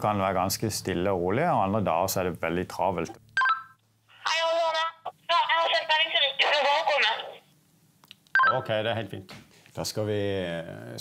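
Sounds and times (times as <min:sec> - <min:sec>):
voice through radio speaker: 0:04.2 - 0:07.4.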